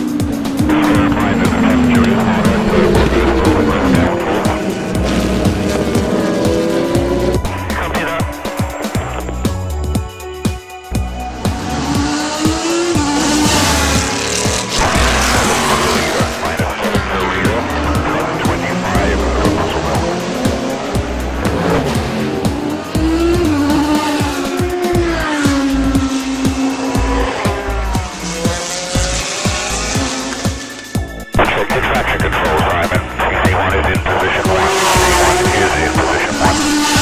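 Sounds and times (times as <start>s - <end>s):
background music with low beat: 0.0s - 37.0s
race car engines: 0.0s - 37.0s.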